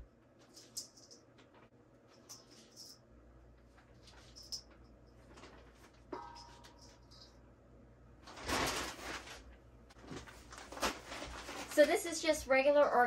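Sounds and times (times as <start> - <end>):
plastic bag crinkling: 8.2 - 12.5.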